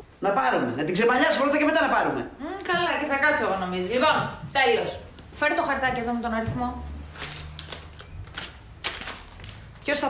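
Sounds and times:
paper rustling: 7.0 - 10.0.

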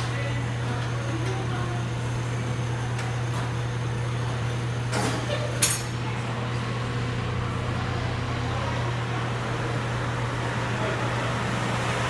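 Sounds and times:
diesel engine rumbling: 6.0 - 12.0.

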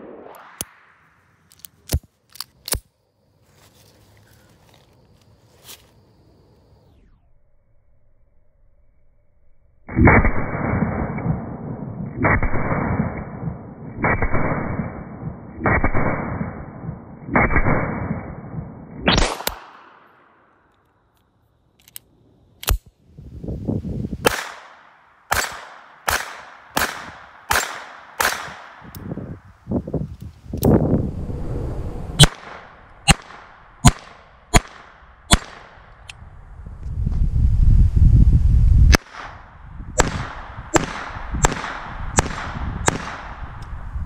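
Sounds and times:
pistol shots: 24.2 - 28.9, 32.2 - 35.8, 40.0 - 43.4.

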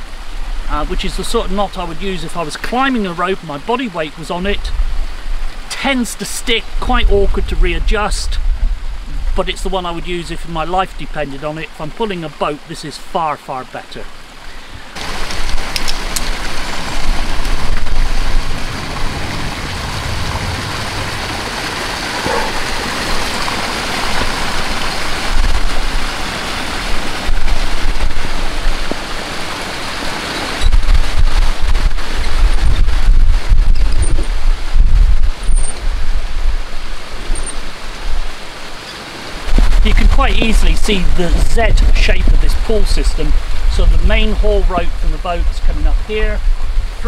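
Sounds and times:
wind on microphone: 6.6 - 10.1, 14.6 - 38.7, 39.4 - 47.0.

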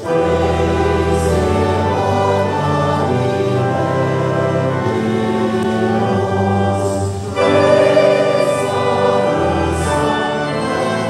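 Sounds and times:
choir singing: 0.0 - 11.0
organ accompaniment: 0.0 - 11.0.

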